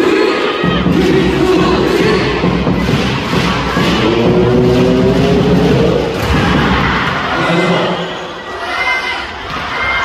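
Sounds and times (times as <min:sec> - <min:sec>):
crowd cheering and shouting: 0:00.0 - 0:10.0.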